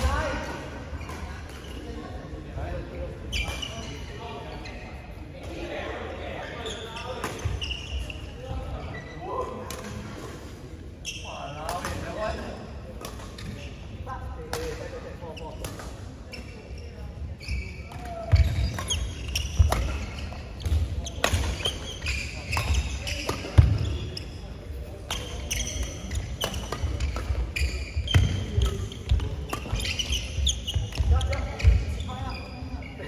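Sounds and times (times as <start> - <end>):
rackets hitting shuttlecock: 9.6 - 10.4, 11.6 - 13.6, 14.4 - 15.0, 15.6 - 16.0, 17.9 - 24.2, 25.0 - 31.8.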